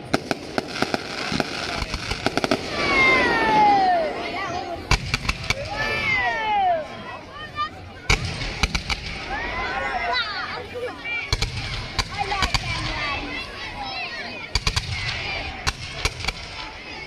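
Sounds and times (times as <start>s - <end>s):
fireworks bursting: 0.0s - 4.0s, 4.8s - 6.0s, 8.1s - 9.5s, 11.3s - 13.4s, 14.5s - 17.0s.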